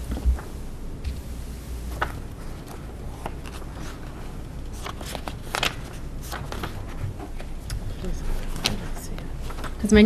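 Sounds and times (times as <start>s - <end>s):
low steady hum: 0.0s - 10.0s
paper rustling: 1.9s - 10.0s.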